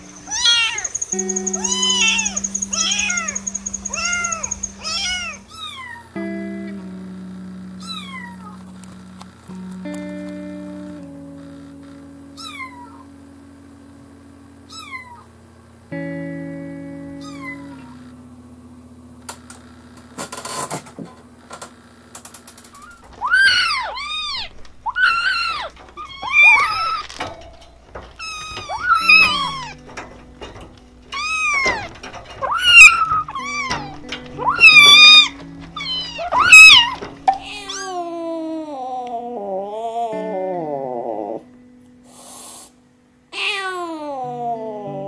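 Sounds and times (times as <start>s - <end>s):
kittens meowing: 0.0s - 6.2s, 7.8s - 8.6s, 12.3s - 13.1s, 14.7s - 15.3s, 17.2s - 18.0s, 22.8s - 30.5s, 31.1s - 41.5s, 43.4s - 45.0s
soft background music: 0.0s - 14.4s, 26.2s - 42.4s.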